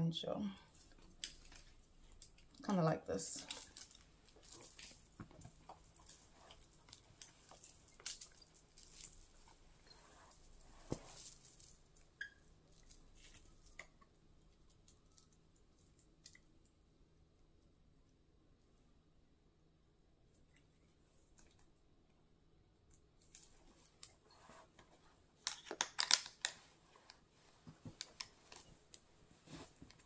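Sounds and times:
chain belt clicks and rustles: 3.4s - 14.0s.

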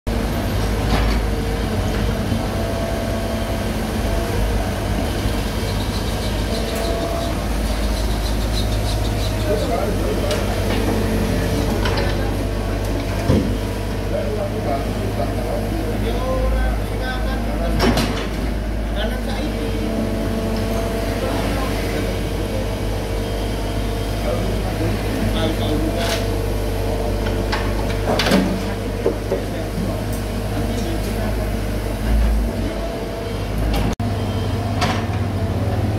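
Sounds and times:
dump truck engine running: 0.1s - 35.9s
excavator diesel engine under load: 0.1s - 35.9s.

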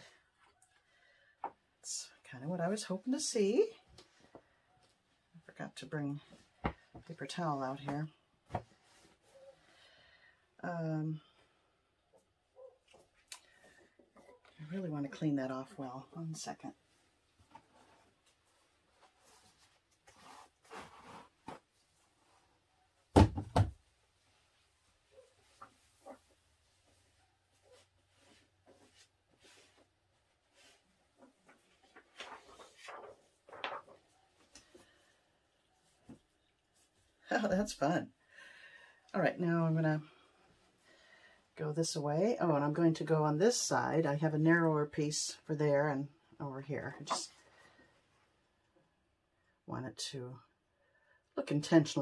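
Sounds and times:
faint room noise: 0.0s - 52.0s
rustling: 16.8s - 23.0s, 24.2s - 37.1s.

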